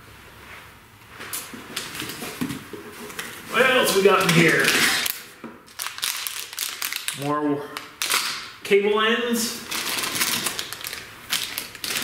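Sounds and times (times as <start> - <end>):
packaged parts rustling: 3.5 - 8.5, 9.7 - 12.0.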